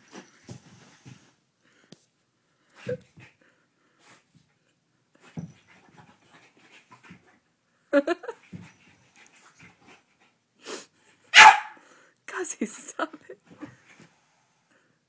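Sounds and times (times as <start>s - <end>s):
dog barks and yelps: 11.3s - 11.8s.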